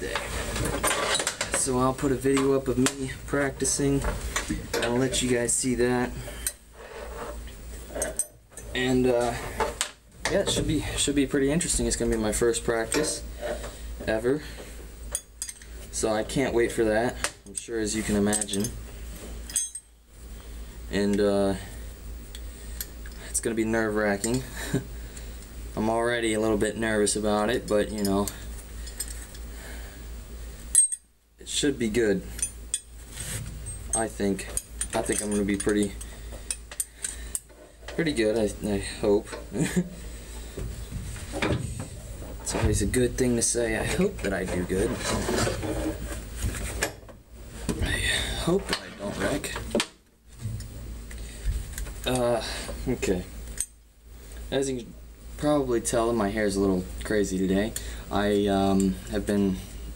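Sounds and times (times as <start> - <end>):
rubbing and scraping handling noise: 0.0 - 19.5, 30.1 - 53.2
low steady hum: 0.0 - 59.9.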